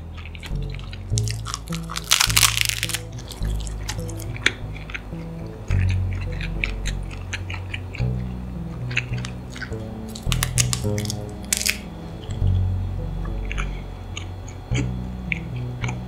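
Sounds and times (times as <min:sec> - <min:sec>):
crunchy biting and chewing clicks: 0:00.0 - 0:12.6, 0:13.2 - 0:16.0
background music with low notes: 0:00.0 - 0:16.0.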